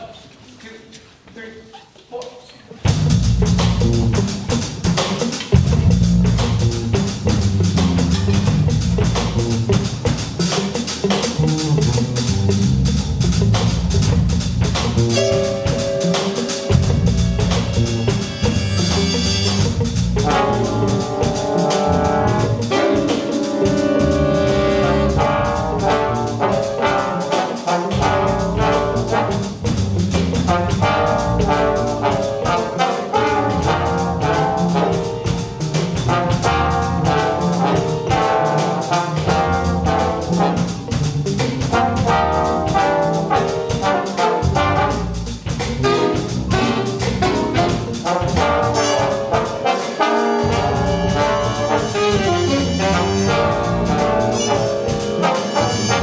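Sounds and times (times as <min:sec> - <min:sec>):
bass: 0:02.8 - 0:56.0
drum kit beat: 0:02.8 - 0:56.0
jazz big band playing funk: 0:02.8 - 0:56.0
trumpets and trombones: 0:14.8 - 0:56.0
saxophones: 0:15.0 - 0:29.8, 0:41.7 - 0:56.0.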